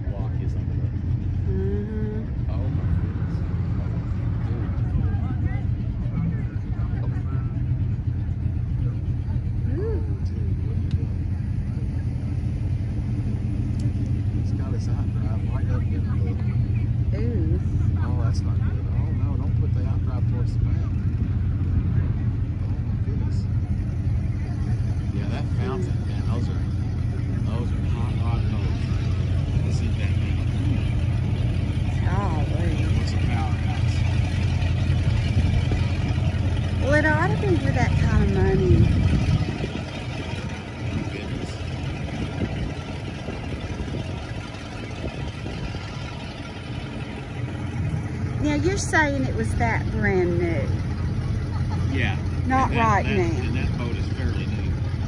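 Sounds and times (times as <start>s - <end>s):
distant voices: 0.0s - 55.0s
engine idling: 0.0s - 55.0s.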